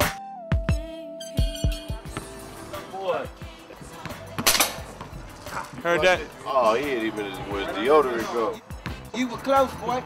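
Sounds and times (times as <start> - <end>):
hip-hop beat: 0.0 - 10.0
gunshot: 4.4 - 4.8.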